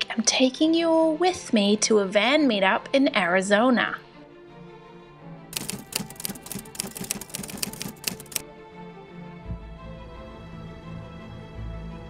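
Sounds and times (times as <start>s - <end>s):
soft background music: 0.0s - 12.0s
typewriter keys clicking: 5.6s - 8.4s.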